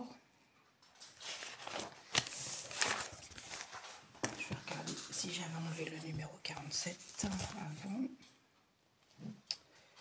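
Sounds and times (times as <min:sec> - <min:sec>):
notebook page rustling: 0:01.0 - 0:08.0.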